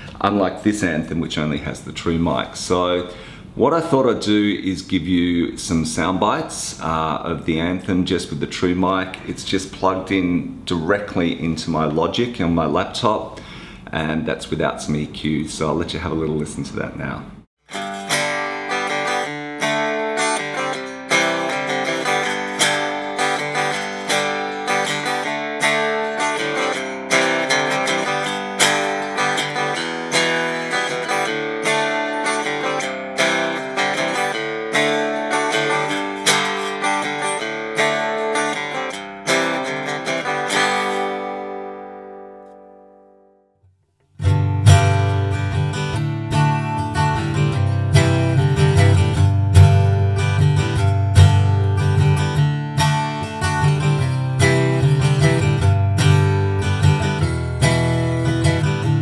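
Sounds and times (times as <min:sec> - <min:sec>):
acoustic guitar chords and notes: 0:17.6 - 0:59.0.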